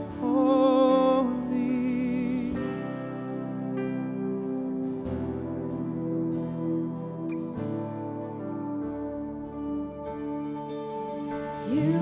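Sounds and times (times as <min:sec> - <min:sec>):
worship band playing slow song: 0:00.0 - 0:12.0.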